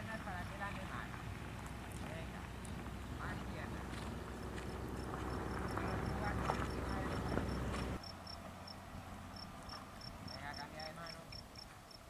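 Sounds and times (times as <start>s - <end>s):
horse hoofbeats on sand: 0.0s - 8.0s
insects chirping: 2.8s - 12.0s.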